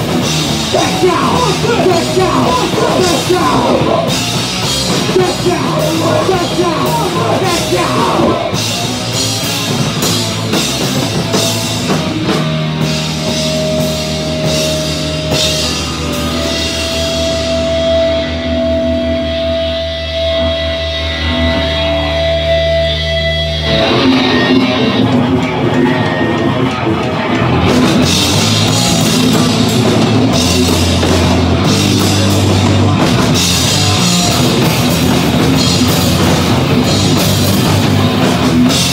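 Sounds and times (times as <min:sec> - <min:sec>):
bass guitar: 0:00.0 - 0:38.9
distorted electric guitars: 0:00.0 - 0:38.9
drums: 0:00.0 - 0:38.9.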